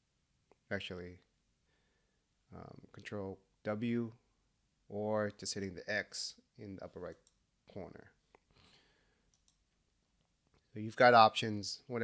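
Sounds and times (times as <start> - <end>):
computer mouse click: 9.3 - 9.7.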